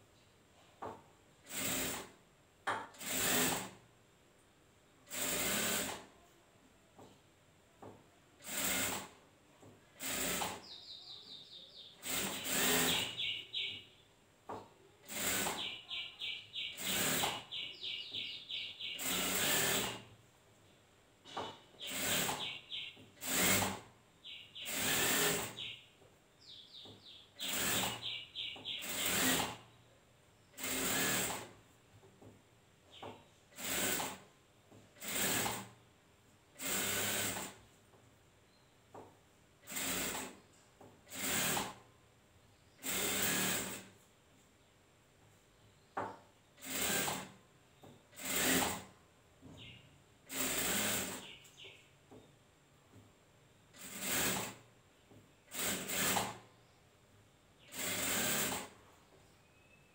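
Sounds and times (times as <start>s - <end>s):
industrial sewing machine stitching: 1.4s - 2.1s, 3.0s - 3.8s, 5.1s - 6.0s, 8.4s - 9.2s, 10.0s - 10.6s, 12.0s - 13.2s, 15.0s - 15.8s, 16.8s - 17.5s, 19.0s - 20.1s, 21.9s - 22.6s, 23.2s - 23.9s, 24.6s - 25.6s, 27.4s - 28.1s, 28.8s - 29.6s, 30.6s - 31.6s, 33.6s - 34.2s, 35.0s - 35.8s, 36.6s - 37.6s, 39.6s - 40.3s, 41.1s - 41.8s, 42.8s - 43.9s, 46.6s - 47.4s, 48.2s - 48.9s, 50.3s - 51.4s, 53.8s - 54.6s, 55.5s - 56.4s, 57.7s - 58.8s.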